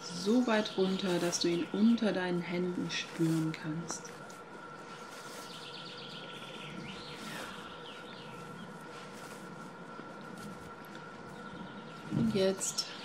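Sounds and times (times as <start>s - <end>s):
thin constant tone: 0.0s - 13.0s.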